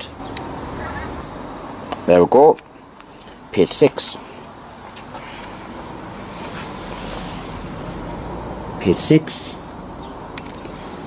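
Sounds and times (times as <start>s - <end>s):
steady rushing hiss: 2.8s - 9.6s, 10.6s - 11.0s.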